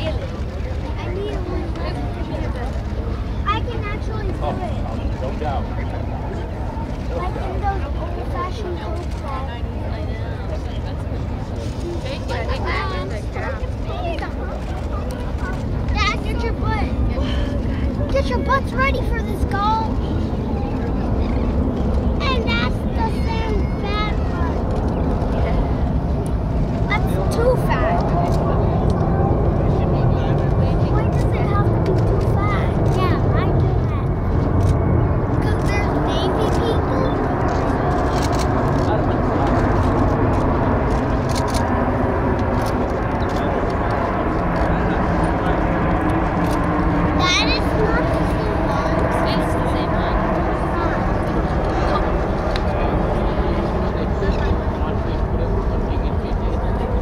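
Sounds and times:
faint spectators' voices: 0.0s - 57.0s
jet aircraft engines passing overhead: 0.0s - 57.0s.

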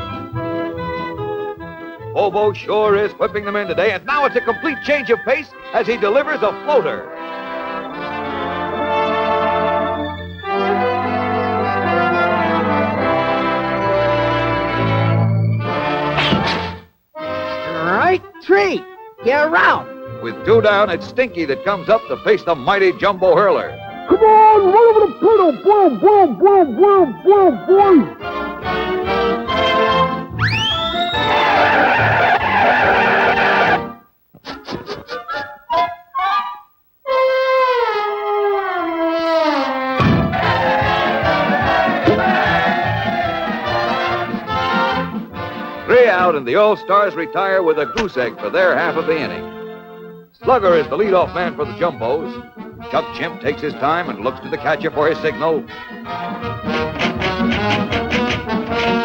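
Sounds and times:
orchestral brass underscore: 2.9s - 22.3s, 23.5s - 34.1s, 35.7s - 59.0s
whistle gliding upward: 30.4s - 31.8s
brass line sliding downward: 37.1s - 46.0s.

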